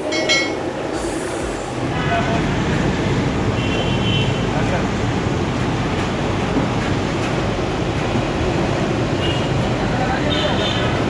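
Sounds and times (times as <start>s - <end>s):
street traffic rumble: 0.0s - 11.0s.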